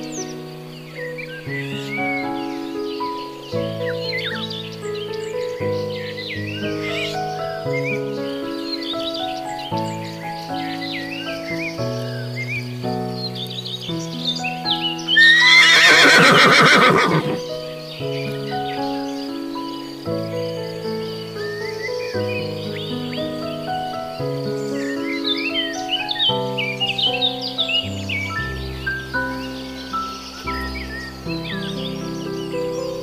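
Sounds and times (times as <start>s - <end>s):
gentle background music: 0.0s - 33.0s
horse whinnying: 15.1s - 17.4s.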